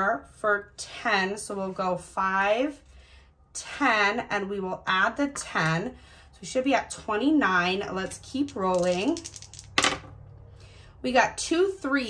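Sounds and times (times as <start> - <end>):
dice clattering on paper: 8.0 - 10.1
dice shaken in the hand: 8.1 - 10.0.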